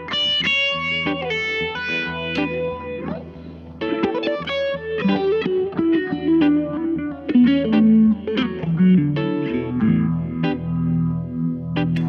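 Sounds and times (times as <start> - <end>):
electric guitar low notes ringing: 0.0 - 12.0
sharp picked guitar notes: 0.0 - 12.0.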